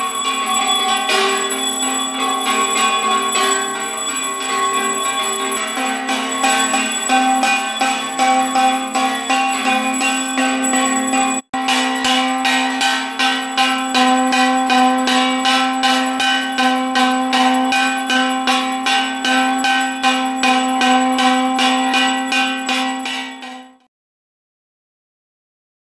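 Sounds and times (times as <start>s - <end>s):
temple bell ringing rapidly: 0.0s - 23.9s.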